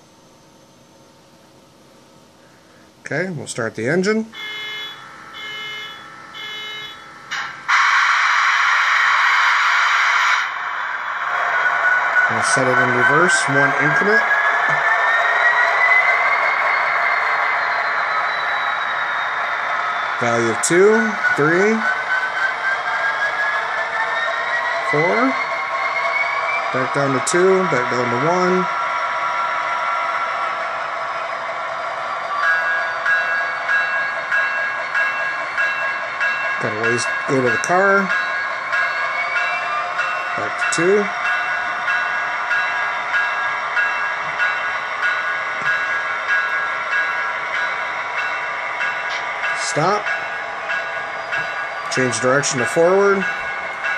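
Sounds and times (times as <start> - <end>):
model locomotive engine hum: 0.0 - 9.2, 10.1 - 53.9.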